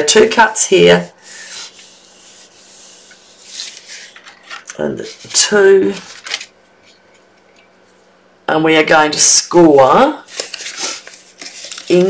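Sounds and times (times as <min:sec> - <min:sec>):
cardstock rustling: 0:01.6 - 0:06.5, 0:10.3 - 0:12.0.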